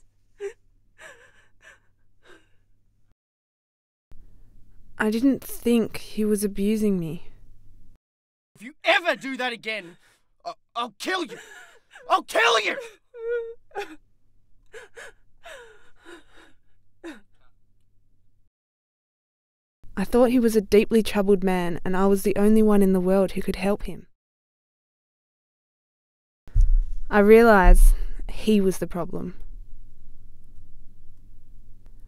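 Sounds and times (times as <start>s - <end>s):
woman gasping and sobbing: 0.0s - 2.6s, 11.3s - 14.0s, 14.7s - 17.4s.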